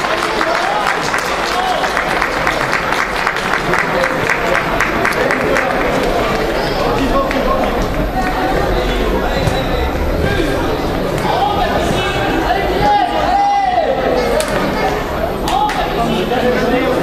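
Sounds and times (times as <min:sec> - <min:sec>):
people clapping: 0:00.0 - 0:08.9, 0:15.4 - 0:16.0.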